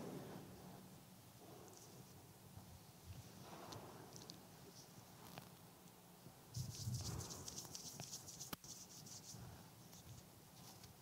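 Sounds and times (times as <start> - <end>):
faint rustling and shuffling: 0.0 - 11.0.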